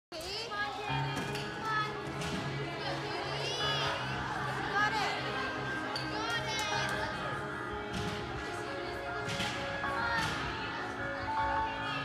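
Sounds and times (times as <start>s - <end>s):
children chattering: 0.3s - 7.8s, 8.5s - 12.0s
music playing: 0.8s - 12.0s.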